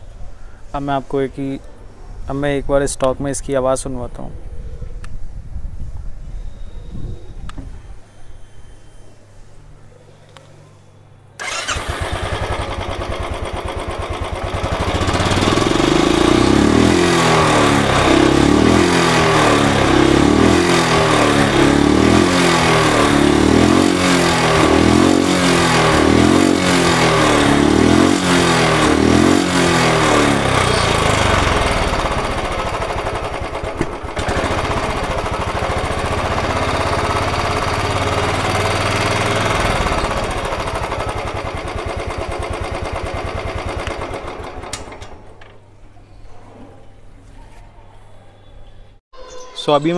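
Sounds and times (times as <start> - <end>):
motorcycle engine revving: 11.4 - 45.2
motorcycle engine idling: 11.4 - 45.3.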